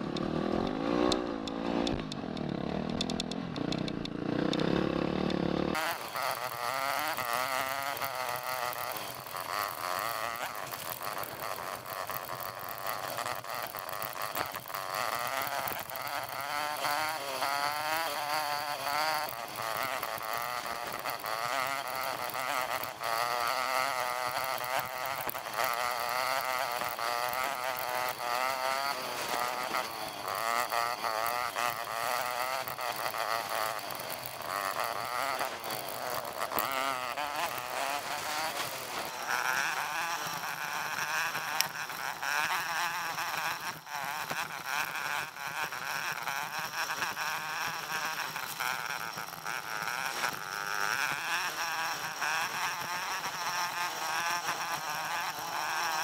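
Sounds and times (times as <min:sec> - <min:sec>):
sped-up motorcycle engine buzz: 0:00.0 - 0:56.0.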